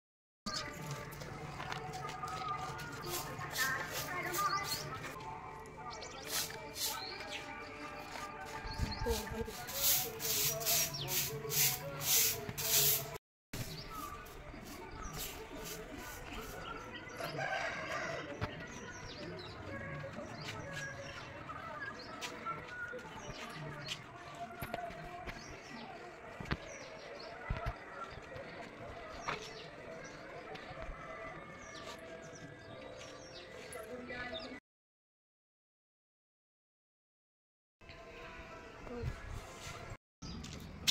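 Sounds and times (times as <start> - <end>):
birds chirping: 0.5 - 13.0, 13.6 - 34.6
hand scraping ash: 9.1 - 16.7.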